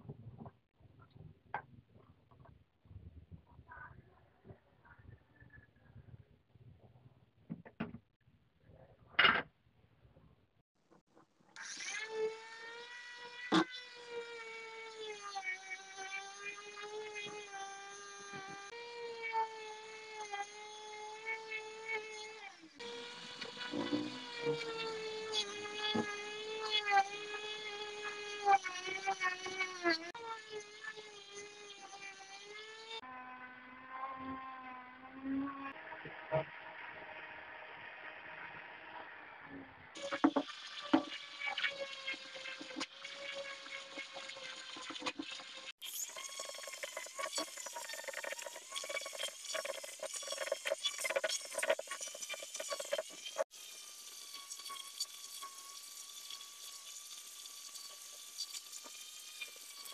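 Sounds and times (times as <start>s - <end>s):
rotary tool wire brush whine: 11.6s - 39.3s, 40.0s - 59.9s.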